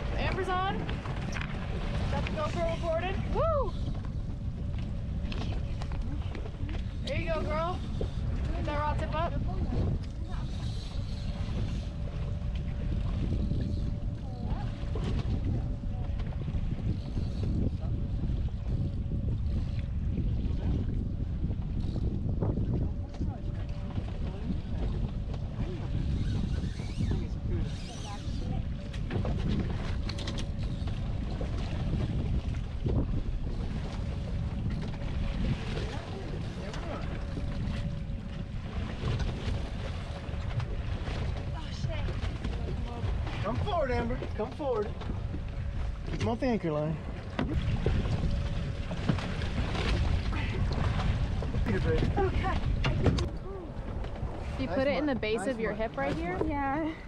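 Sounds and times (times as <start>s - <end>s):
water against boat hull: 0.0s - 57.0s
wind buffeting microphone: 0.0s - 57.0s.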